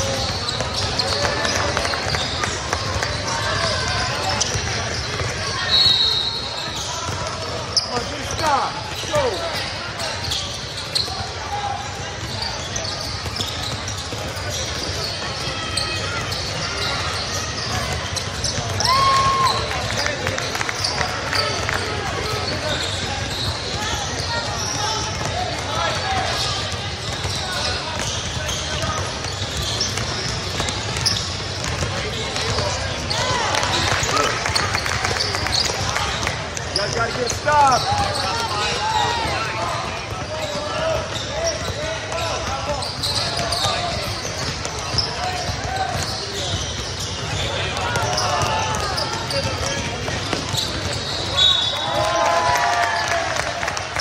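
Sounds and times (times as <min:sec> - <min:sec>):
basketball dribbling: 0:00.0 - 0:05.6, 0:22.7 - 0:33.4, 0:34.1 - 0:51.3
shoe squeaks: 0:00.0 - 0:52.1.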